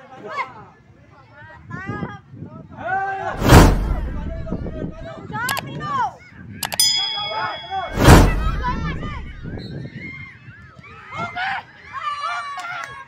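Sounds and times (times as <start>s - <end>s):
loud heavy thumps: 3.4s - 5.1s, 7.8s - 9.6s
sharp ringing ding: 6.6s - 9.6s.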